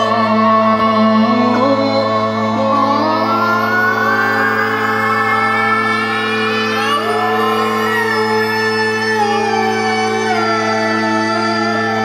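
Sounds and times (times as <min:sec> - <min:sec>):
low drone: 0:00.0 - 0:12.0
siren-like gliding tone: 0:00.0 - 0:12.0.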